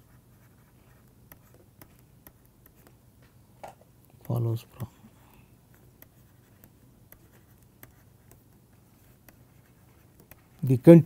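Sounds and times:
stylus tapping on tablet: 1.1s - 4.9s, 5.7s - 10.7s.

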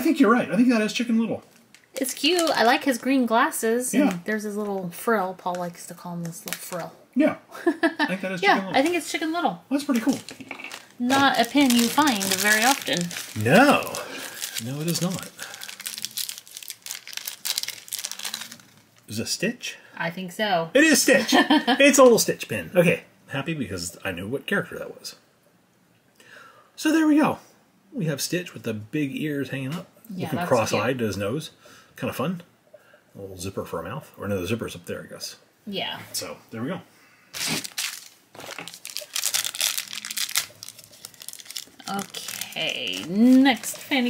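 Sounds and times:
wrapper crinkling: 1.4s - 3.1s, 4.0s - 6.9s, 9.8s - 19.2s, 37.3s - 44.0s.

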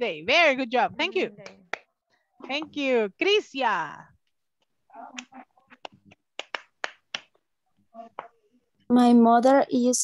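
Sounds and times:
sharp hand claps: 1.4s - 1.9s, 5.2s - 7.4s.

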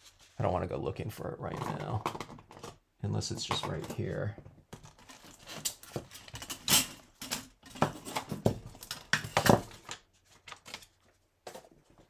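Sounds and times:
craft supplies rummaged on desk: 0.0s - 12.0s.

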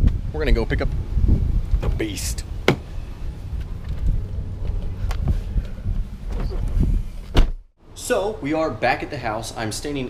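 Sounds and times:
wind buffeting microphone: 0.0s - 7.3s.

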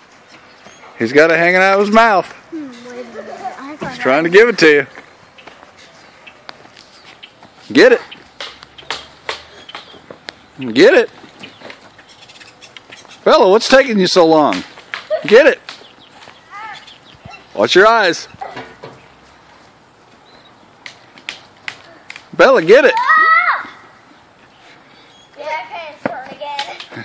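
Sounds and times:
footsteps scuffing on grass: 1.8s - 13.3s, 15.8s - 17.4s, 18.3s - 20.5s.

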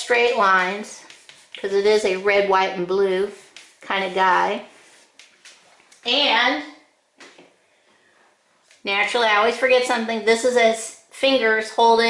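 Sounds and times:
woman's voice: 0.0s - 4.7s, 6.0s - 6.9s, 8.8s - 12.0s.

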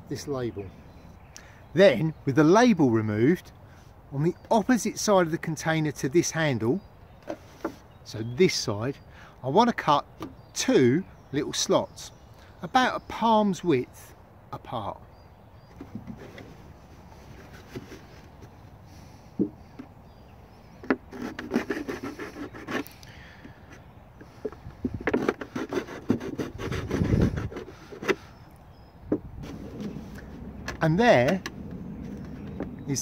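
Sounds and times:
knife sawing plastic carton: 21.0s - 23.0s, 25.0s - 28.2s.

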